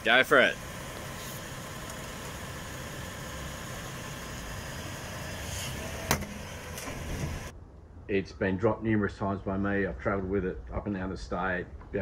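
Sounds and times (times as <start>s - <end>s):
car engine idling: 0.0s - 7.5s.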